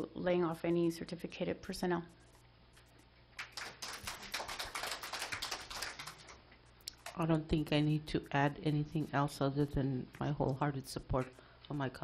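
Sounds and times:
audience applause: 3.4s - 6.4s.

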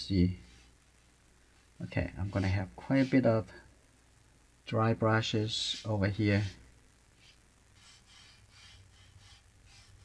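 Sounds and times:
brush strokes on paper: 0.0s - 3.7s, 5.3s - 10.0s.

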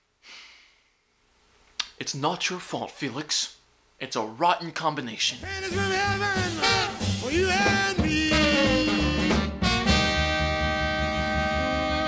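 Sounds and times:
man sighing: 0.2s - 0.9s
man speaking: 1.8s - 9.5s.

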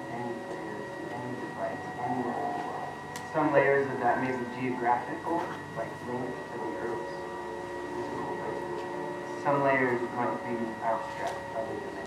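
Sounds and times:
soft music with sustained chords: 0.0s - 12.0s.

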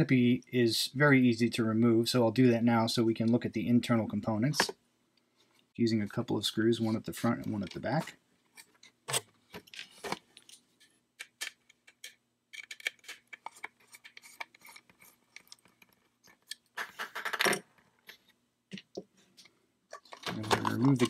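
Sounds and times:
handling small parts: 6.8s - 21.0s.

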